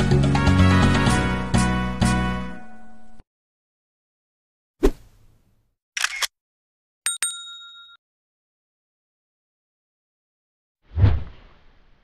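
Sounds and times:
bright bell dinging: 7.1s - 8.0s.

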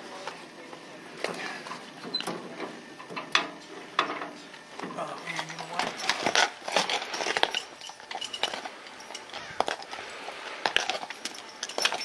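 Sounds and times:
metal clicks and clanks: 2.0s - 10.0s, 10.7s - 12.0s
voices talking: 3.8s - 6.3s.

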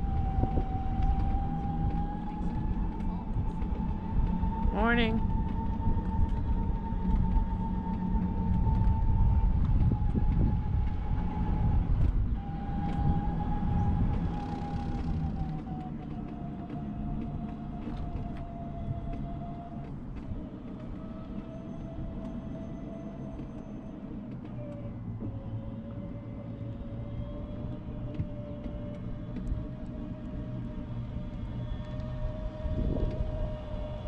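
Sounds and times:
low rumble: 0.0s - 34.0s
scooter motor whining: 0.0s - 34.0s.

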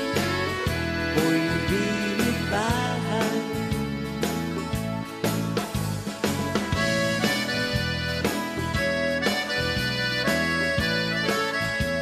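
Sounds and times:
accordion solo: 0.0s - 12.0s
band backing with steady beat: 0.0s - 12.0s.

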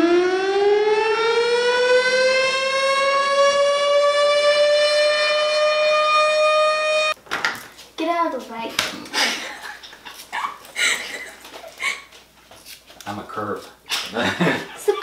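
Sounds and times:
siren winding up: 0.0s - 7.2s.

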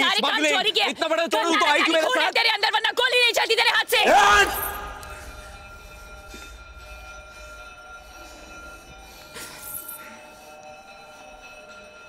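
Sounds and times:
low rumble: 4.4s - 9.4s.

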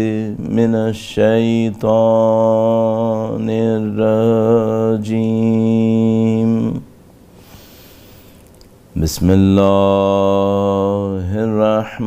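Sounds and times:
man chanting: 0.0s - 6.9s, 9.0s - 12.0s.

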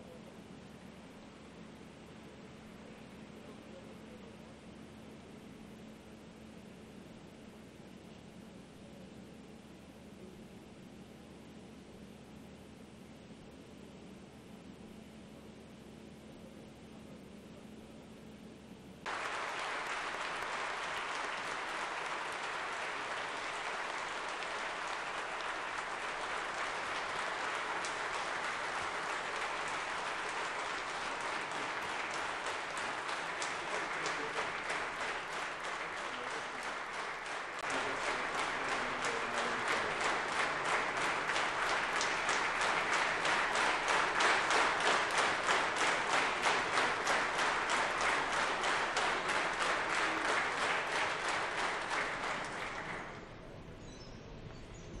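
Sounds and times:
rhythmic clapping: 19.0s - 53.3s
large crowd applauding: 19.0s - 53.5s.

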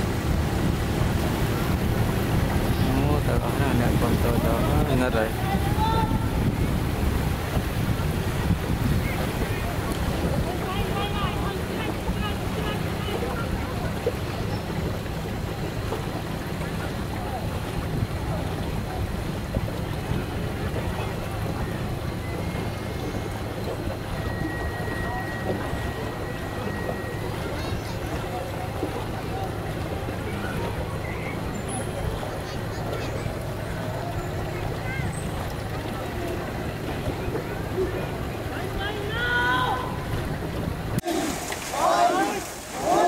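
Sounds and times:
wind on microphone: 0.0s - 12.2s
boat engine running: 0.0s - 43.0s
water rushing past: 0.0s - 43.0s.

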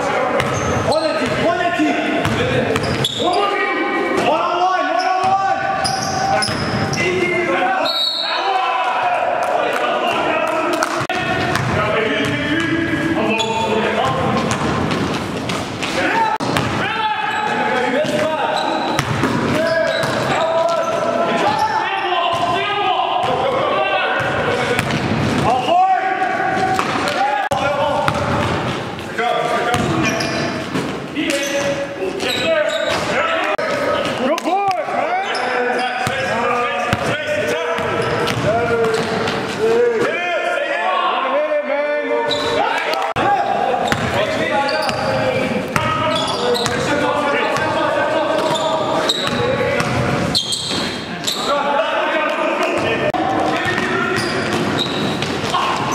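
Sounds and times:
players calling out: 0.0s - 55.9s
sneakers squeaking: 0.3s - 4.3s, 4.9s - 8.5s, 10.8s - 22.6s, 24.2s - 25.7s, 26.5s - 39.7s, 42.2s - 42.7s, 43.4s - 51.6s, 52.8s - 55.9s
basketball bouncing: 2.2s - 3.0s, 10.8s - 12.8s, 14.0s - 16.8s, 18.9s - 20.3s, 24.2s - 25.5s, 26.6s - 28.9s, 29.7s - 31.0s, 37.8s - 39.4s, 43.9s - 44.2s, 49.2s - 50.8s.

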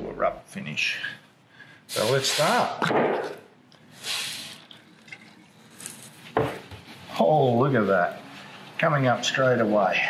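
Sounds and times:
short hiss: 1.9s - 2.8s, 3.9s - 4.7s
cloth rag rubbing wood: 6.1s - 10.0s.

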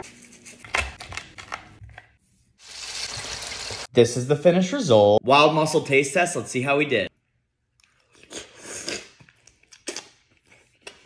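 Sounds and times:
person chewing: 7.8s - 11.0s.

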